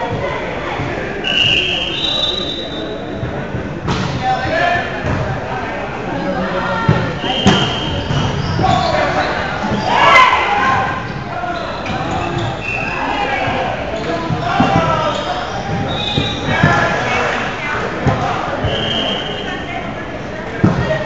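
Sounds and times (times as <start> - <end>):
players chatting and calling out: 0.0 - 21.0.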